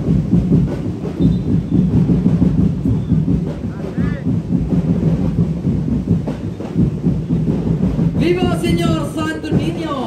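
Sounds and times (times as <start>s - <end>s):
massed drums playing fast beat: 0.0s - 10.0s.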